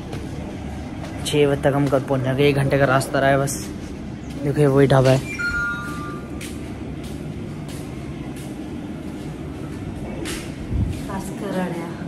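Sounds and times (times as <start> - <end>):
vehicle road and engine noise: 0.0 - 12.0.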